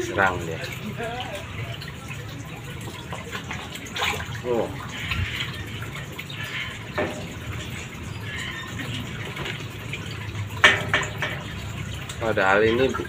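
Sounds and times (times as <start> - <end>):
aquarium water bubbling: 0.0 - 13.0.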